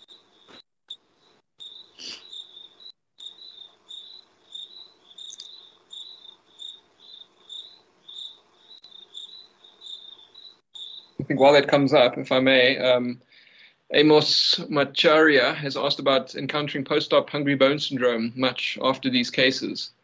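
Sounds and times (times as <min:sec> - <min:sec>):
insect chirping: 0:00.0 - 0:11.5.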